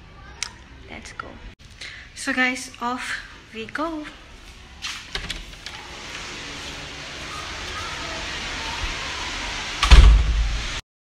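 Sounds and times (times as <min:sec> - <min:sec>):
sudden loud thump and rumble: 0:09.8 - 0:10.8.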